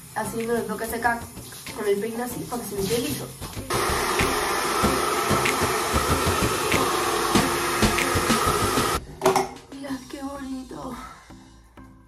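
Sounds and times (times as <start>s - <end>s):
hair dryer running: 3.7s - 9.0s.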